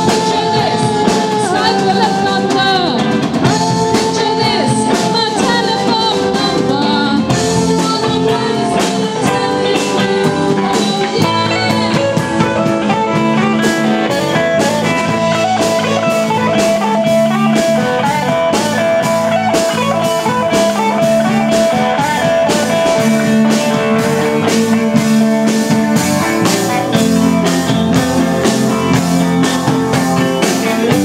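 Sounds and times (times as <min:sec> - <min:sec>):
electric guitar lead: 0:00.0 - 0:31.0
live rock band: 0:00.0 - 0:31.0.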